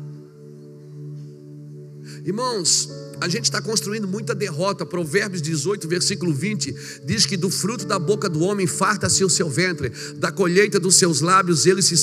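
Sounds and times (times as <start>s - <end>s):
soft sustained chord music: 0.0s - 12.0s.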